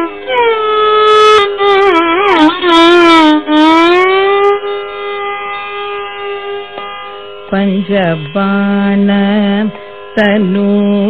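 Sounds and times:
violin: 0:00.0 - 0:11.0
classical vocal singing: 0:07.5 - 0:11.0.

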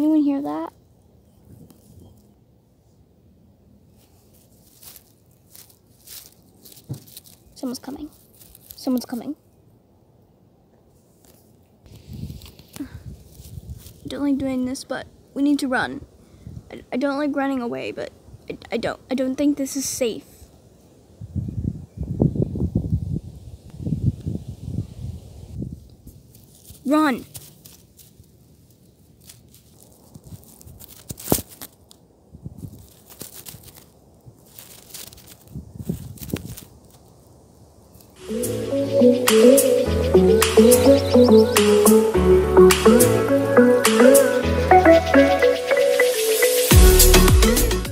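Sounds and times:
dry grass and leaves rustling: 0:00.0 - 0:09.8, 0:10.8 - 0:42.2
low thumps and rustling in grass: 0:04.0 - 0:07.4.

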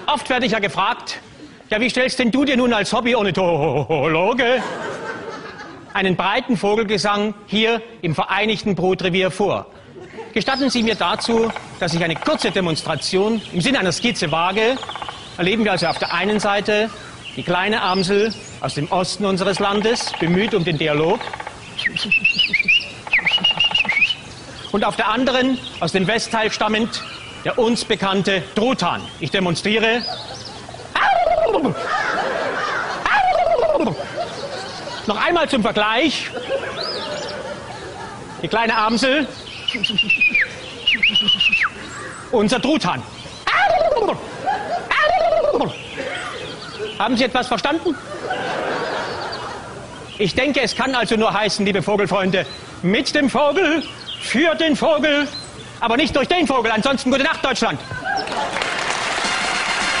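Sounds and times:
man imitating turkey gobble: 0:19.4 - 0:24.2, 0:30.9 - 0:32.1, 0:32.7 - 0:34.1, 0:39.7 - 0:41.8, 0:43.4 - 0:46.9
studio audience applauding: 0:58.2 - 1:00.0.

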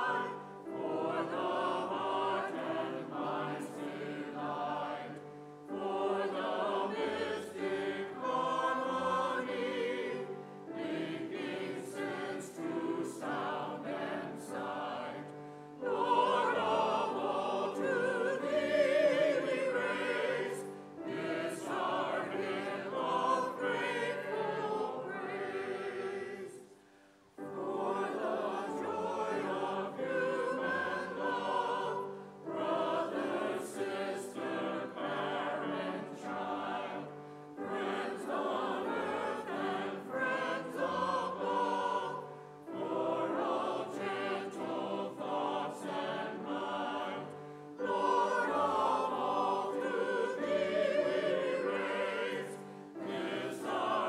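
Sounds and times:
choir and congregation singing hymn: 0:00.0 - 0:54.0.

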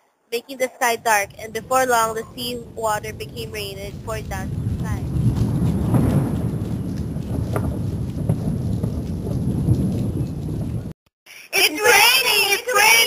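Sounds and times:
faint crackles: 0:00.9 - 0:11.0
low thunder rumble: 0:00.9 - 0:11.0
heavy rain: 0:01.0 - 0:11.0.

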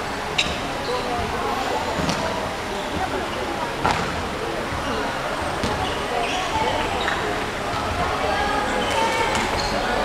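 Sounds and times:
chatter and calls of people: 0:00.0 - 0:10.0.

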